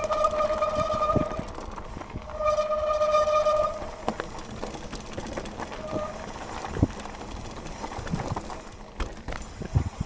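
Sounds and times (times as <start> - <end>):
high-pitched bike whine: 0.0 - 8.6
tyre noise on dirt: 0.0 - 10.0.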